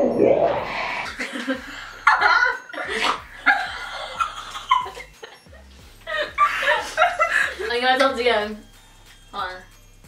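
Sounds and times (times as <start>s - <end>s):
women laughing: 1.1s - 7.8s.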